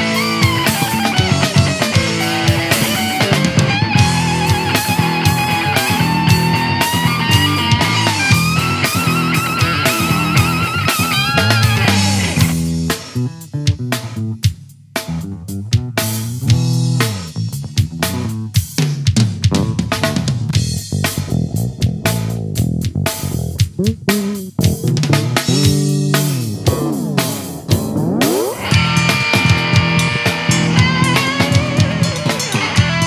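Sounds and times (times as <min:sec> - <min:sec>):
wavering lead guitar: 0:00.0 - 0:13.9, 0:19.5 - 0:22.5, 0:23.1 - 0:33.0
drum kit: 0:00.0 - 0:33.0
electric bass: 0:00.0 - 0:33.0.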